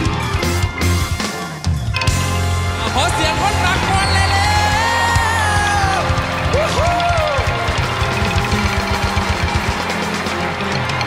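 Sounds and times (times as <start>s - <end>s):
band music with fast drum beat: 0.0s - 11.0s.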